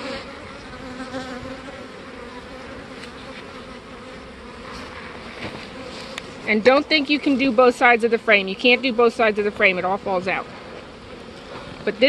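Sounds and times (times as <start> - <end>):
bees buzzing: 0.0 - 12.0
single bee humming: 0.0 - 12.0.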